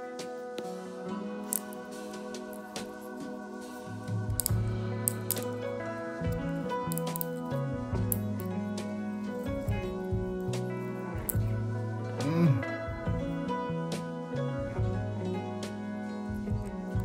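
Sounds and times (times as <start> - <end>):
instrumental music sustained notes: 0.0 - 17.0
bass line: 7.8 - 13.5.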